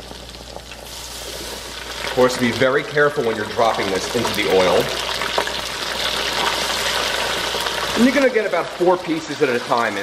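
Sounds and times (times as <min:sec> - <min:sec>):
fish sizzling in deep fryer: 0:00.0 - 0:10.0.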